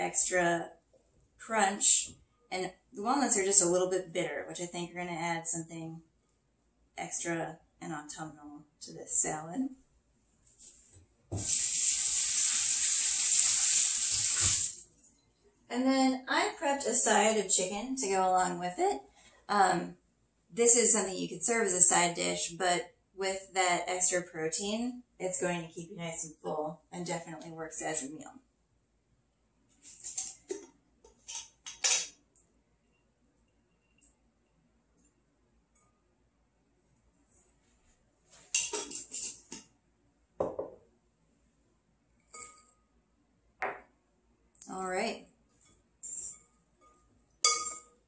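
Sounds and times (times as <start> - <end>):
water running into sink: 11.4 - 14.8.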